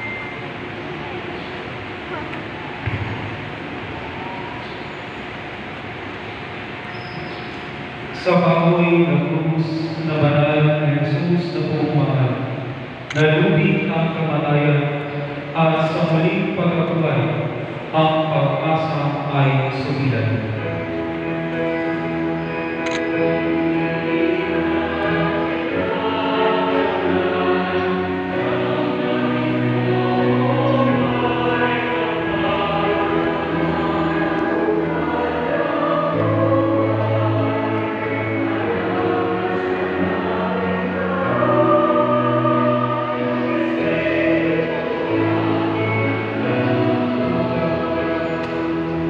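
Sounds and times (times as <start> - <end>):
choir singing a hymn: 8.1 - 49.0.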